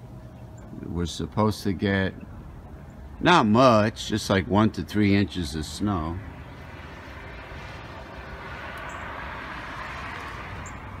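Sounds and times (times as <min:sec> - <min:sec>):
low steady rumble: 0:00.0 - 0:11.0
vehicle passing on wet street: 0:05.4 - 0:11.0.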